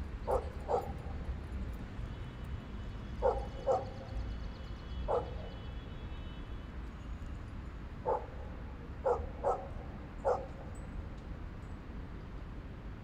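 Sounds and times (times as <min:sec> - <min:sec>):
dog barking: 0:00.3 - 0:01.0, 0:03.2 - 0:04.1, 0:05.1 - 0:05.5, 0:08.0 - 0:10.7.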